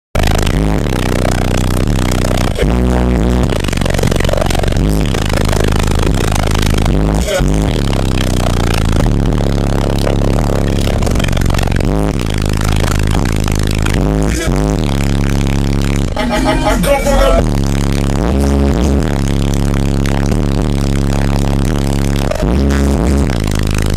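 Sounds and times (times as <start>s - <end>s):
loud bass-heavy music from subwoofers: 0.2s - 23.9s.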